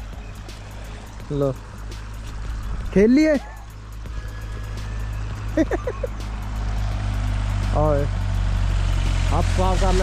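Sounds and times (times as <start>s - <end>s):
people talking: 2.9s - 3.5s, 9.3s - 10.0s.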